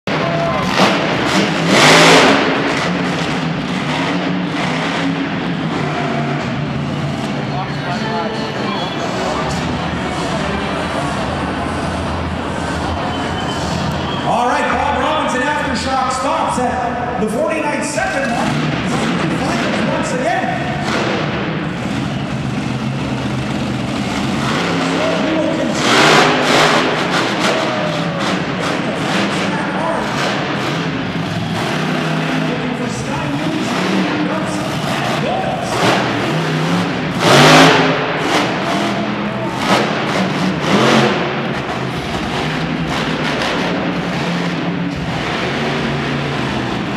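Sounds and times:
monster truck engine revving: 0.0 - 46.9.

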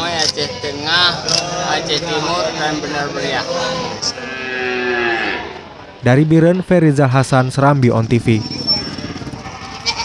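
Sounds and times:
cow mooing: 0.9 - 5.7, 8.7 - 10.0.

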